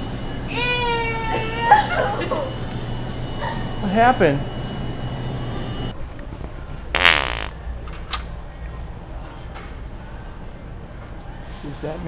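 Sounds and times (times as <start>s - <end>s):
loud wet fart sound: 7.0s - 7.6s.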